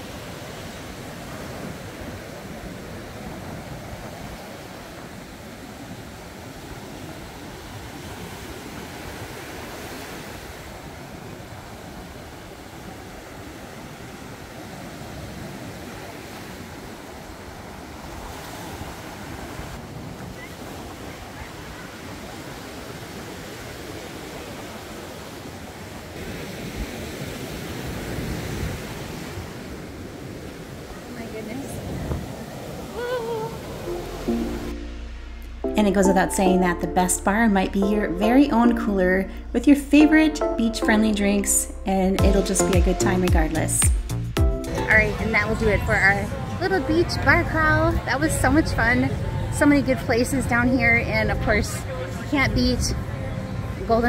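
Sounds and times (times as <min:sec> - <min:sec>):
surf breaking on sand beach: 0:00.0 - 0:34.8.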